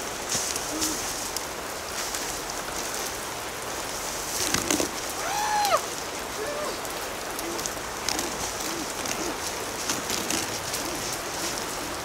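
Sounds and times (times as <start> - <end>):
rain on wet pavement: 0.0 - 12.0.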